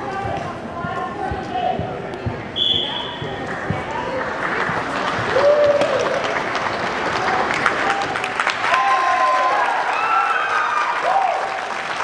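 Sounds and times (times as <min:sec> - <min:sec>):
voices: 0:00.0 - 0:06.2
audience clapping: 0:03.4 - 0:12.0.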